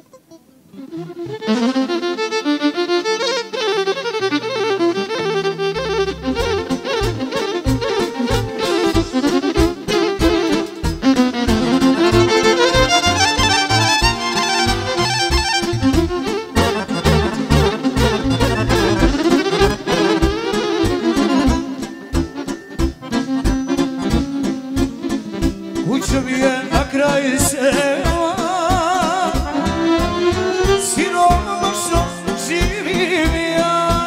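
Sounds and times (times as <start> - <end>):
accordion melody: 0.0 - 34.0
violin with vibrato: 0.7 - 34.0
steady low beat: 4.6 - 33.6.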